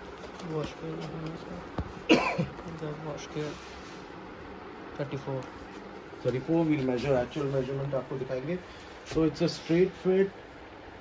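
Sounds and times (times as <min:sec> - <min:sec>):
person coughing: 0:02.0 - 0:02.6.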